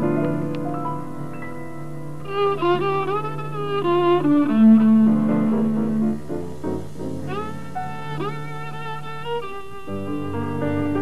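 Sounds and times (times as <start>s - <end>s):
jazz violin melody: 0.0s - 11.0s.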